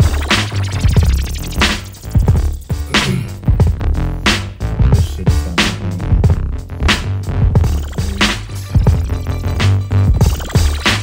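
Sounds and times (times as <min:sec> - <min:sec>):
music with deep bass and beat: 0:00.0 - 0:11.0
sharp percussive hits: 0:07.6 - 0:11.0.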